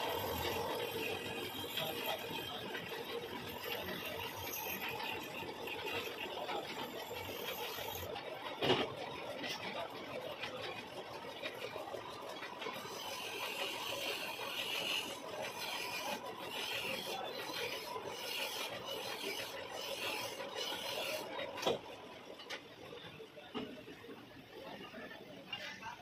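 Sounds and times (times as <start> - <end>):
lathe running: 0.0 - 8.3, 9.2 - 22.4
file rasping against steel: 12.7 - 21.6.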